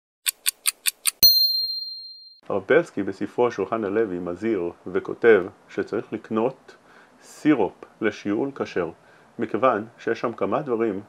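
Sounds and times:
quick ticks: 0.2s - 1.2s
bright bell-like ding: 1.2s - 2.4s.

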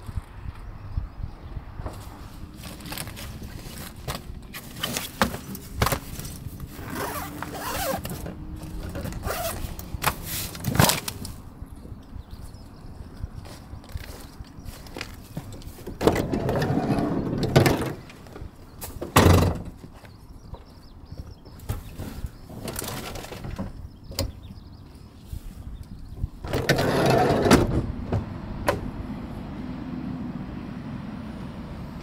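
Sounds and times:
boxes rustling and knocking: 1.9s - 11.2s
sliding van door rolling open: 16.0s - 18.2s, 26.4s - 29.0s.

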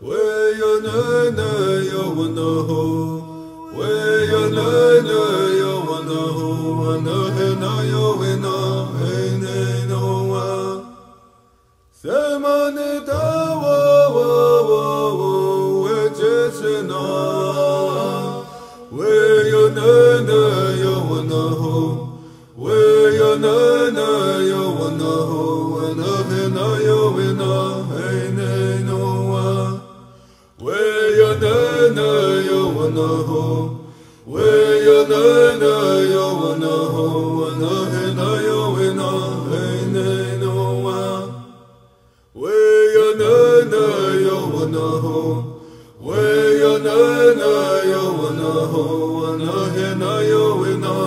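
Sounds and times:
singer breathing: 18.4s - 18.9s, 22.1s - 22.6s, 30.0s - 30.6s, 33.8s - 34.3s, 41.8s - 42.4s, 45.5s - 46.0s.

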